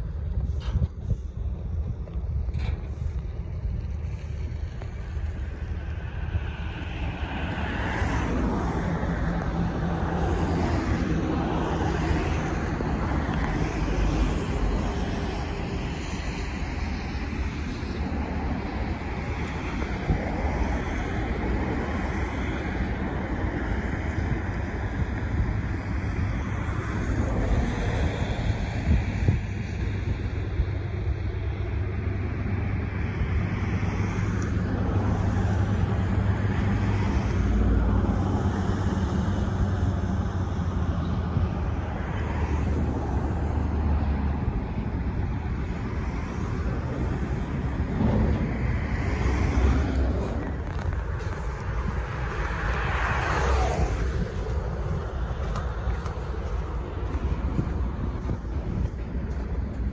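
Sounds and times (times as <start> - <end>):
road traffic rumble: 0.0 - 59.9
wind buffeting microphone: 0.0 - 59.9.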